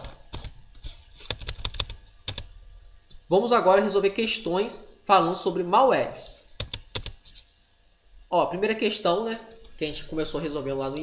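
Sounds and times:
computer keyboard keys clicking: 0.0s - 2.5s, 6.4s - 7.2s.

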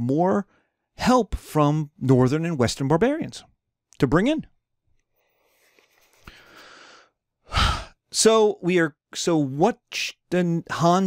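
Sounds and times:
man speaking: 0.0s - 4.5s
man breathing: 5.3s - 8.0s.

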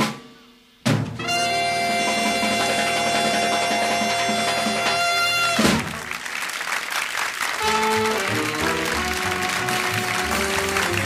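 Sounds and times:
drum roll: 0.0s - 11.0s.

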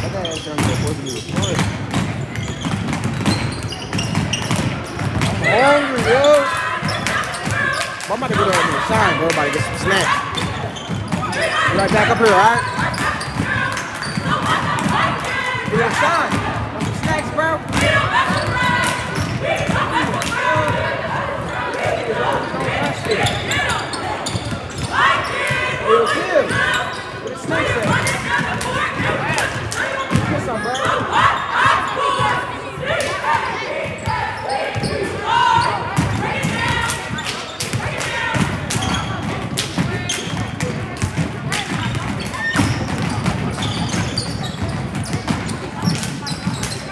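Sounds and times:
basketballs bouncing on wooden floor: 0.0s - 25.9s, 27.5s - 29.2s, 30.1s - 46.9s
echoing voices and chatter: 0.0s - 46.9s.

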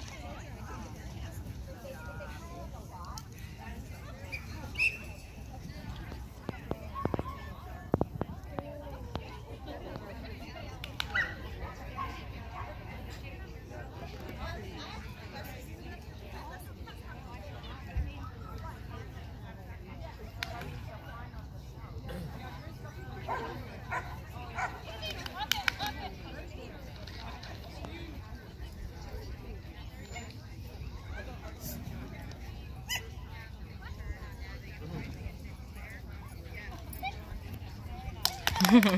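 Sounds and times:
murmur of voices: 0.0s - 38.9s
small dog yipping: 32.9s - 33.2s.

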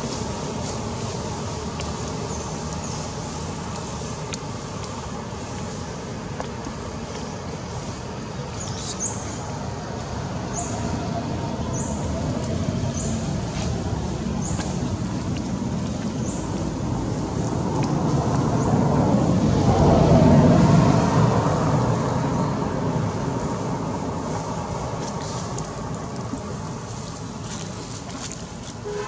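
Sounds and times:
road vehicle passing: 0.0s - 29.0s.

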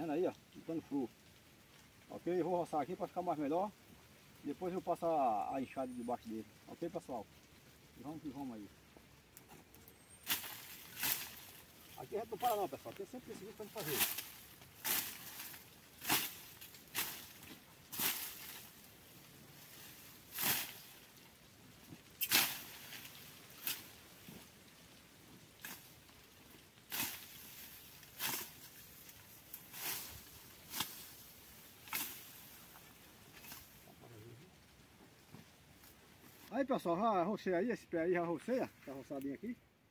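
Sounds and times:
brush hook chopping undergrowth: 10.2s - 11.7s, 13.7s - 18.8s, 20.3s - 21.0s, 22.2s - 24.0s, 26.9s - 31.2s, 31.8s - 32.6s.

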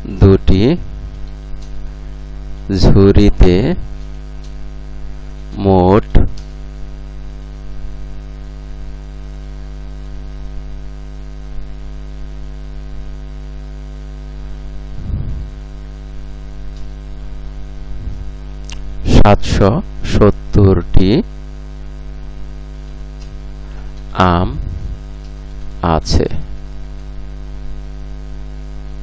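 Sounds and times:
electrical mains hum: 0.0s - 29.0s
person making brief sounds: 14.9s - 15.6s, 23.8s - 25.1s.

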